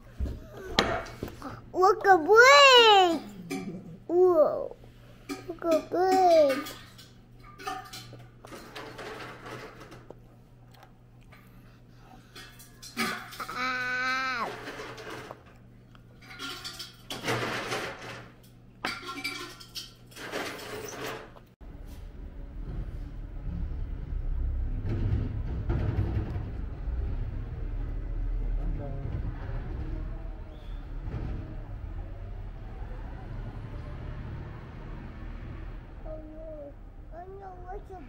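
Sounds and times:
toddler vocalizing: 0:00.4 - 0:04.8, 0:13.4 - 0:14.5, 0:36.0 - 0:38.0.

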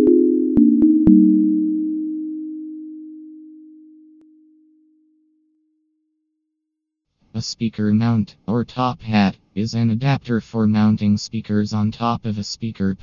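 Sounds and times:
low synthesized tone: 0:00.0 - 0:04.9.

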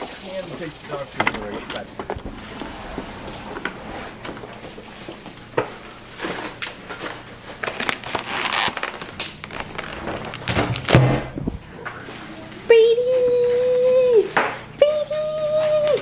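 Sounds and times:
grocery bags rustling: 0:00.0 - 0:14.4.

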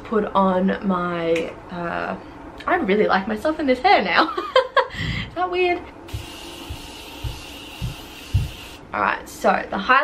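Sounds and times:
soft low thumps: 0:06.1 - 0:08.7
spray bottle hissing: 0:06.1 - 0:08.8.

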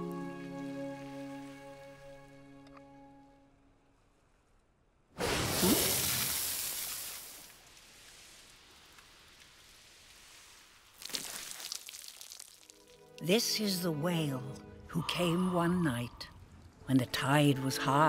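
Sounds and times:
gentle music: 0:00.0 - 0:04.1, 0:12.7 - 0:18.0.

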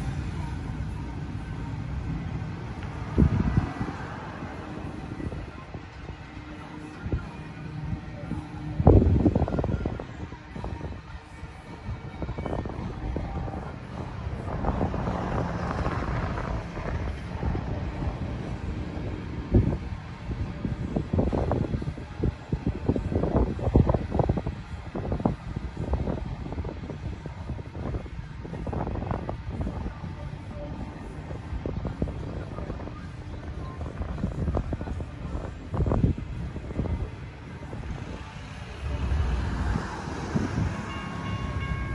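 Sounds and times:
wind gusting on microphone: 0:00.0 - 0:41.9.

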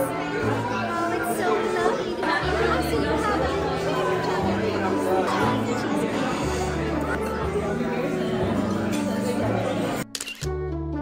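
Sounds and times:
chatter of many voices: 0:00.0 - 0:10.2.

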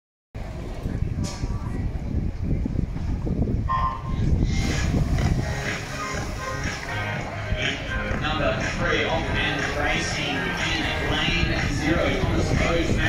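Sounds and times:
crowd murmur: 0:00.4 - 0:13.0
electronic starting beep: 0:03.7 - 0:04.3.

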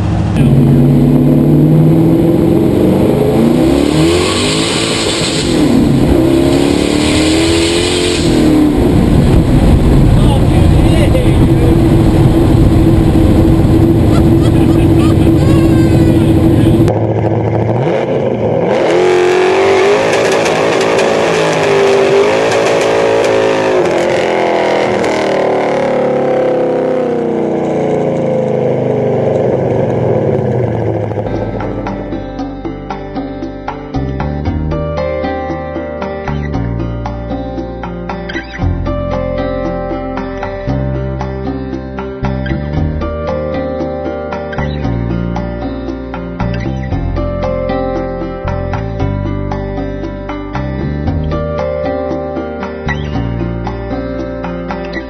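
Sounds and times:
car engine from inside cabin: 0:00.0 - 0:32.2.

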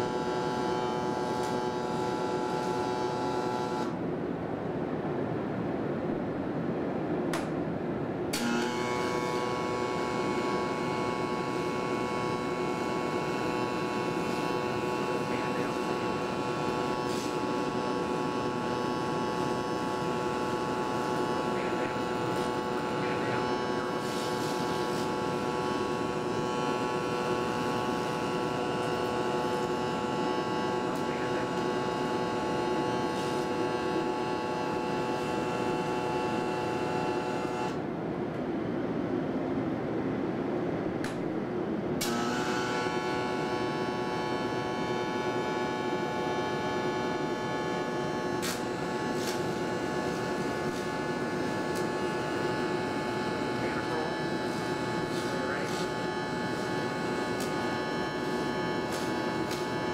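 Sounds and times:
electric arc welding: 0:00.0 - 0:03.9, 0:08.4 - 0:37.8, 0:42.0 - 0:59.9
steady hum: 0:00.0 - 0:59.9.

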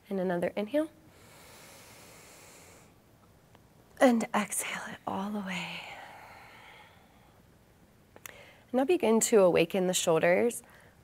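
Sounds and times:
faint breath inhale: 0:01.1 - 0:03.0.

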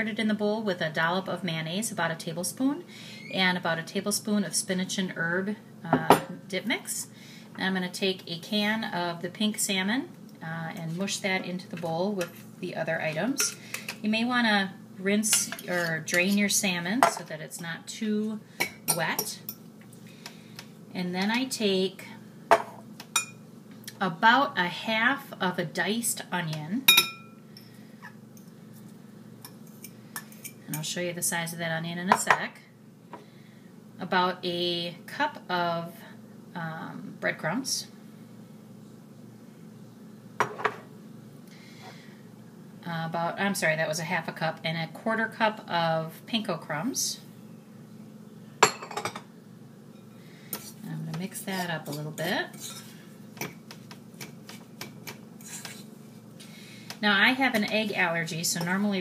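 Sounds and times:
faint room hum: 0:00.0 - 0:59.0
metal spoon stirring in bowl: 0:15.3 - 0:16.4, 0:29.4 - 0:30.6, 0:51.4 - 0:53.5, 0:54.2 - 0:55.9
dishware clinking: 0:48.6 - 0:49.2.

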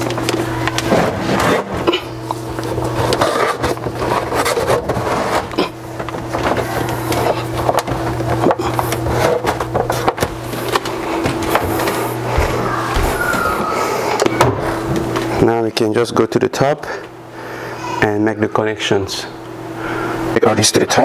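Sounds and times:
cable rustling and scraping: 0:00.0 - 0:15.4
steady low hum: 0:00.0 - 0:21.0.

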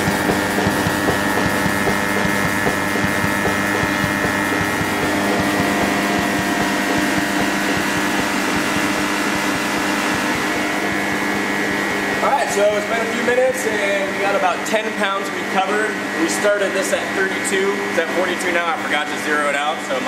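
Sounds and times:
refrigerant recovery machine humming: 0:00.0 - 0:20.0.

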